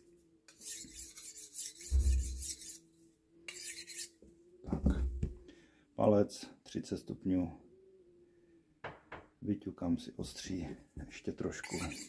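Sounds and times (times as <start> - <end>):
knife scraping on whetstone: 0.5 - 2.8, 3.5 - 4.2, 11.5 - 12.0.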